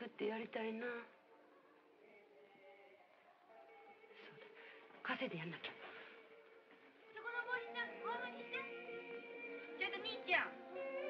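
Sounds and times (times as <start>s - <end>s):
film score of held tones: 0.0s - 11.0s.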